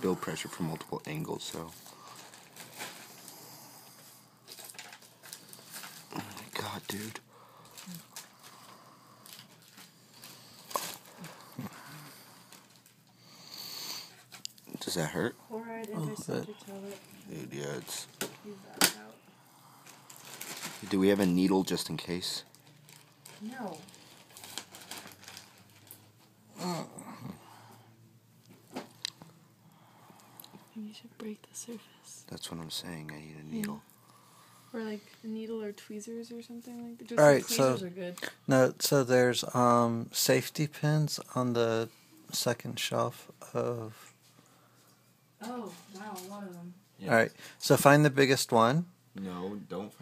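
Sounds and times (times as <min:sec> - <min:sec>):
person whimpering: 0:11.2 - 0:12.3, 0:26.5 - 0:27.6.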